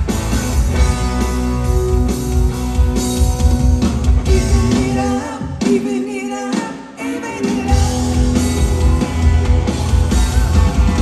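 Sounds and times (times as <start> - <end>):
bass: 0.0 - 11.0
drums: 0.0 - 11.0
electric guitars: 0.0 - 11.0.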